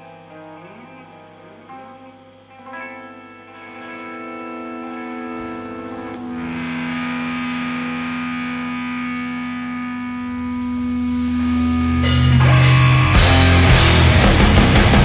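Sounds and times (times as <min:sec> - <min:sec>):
distorted electric guitar chords: 0:00.0 - 0:15.0
distorted bass: 0:05.5 - 0:15.0.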